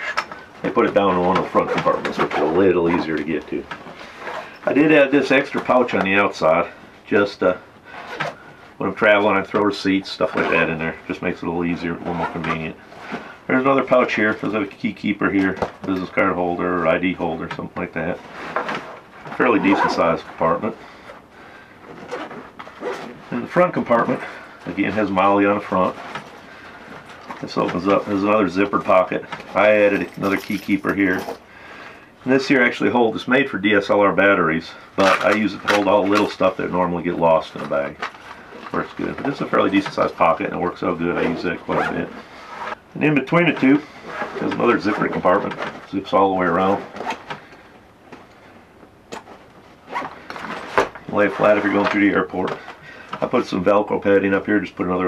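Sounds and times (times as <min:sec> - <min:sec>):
backpack fabric rustling: 0:21.0 - 0:31.5.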